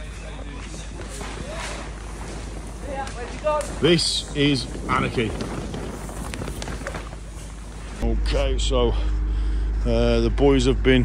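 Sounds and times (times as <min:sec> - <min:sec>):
faint crackles: 0:00.0 - 0:08.0
plastic sheeting rustling: 0:00.0 - 0:08.0
wind on microphone: 0:02.1 - 0:08.0.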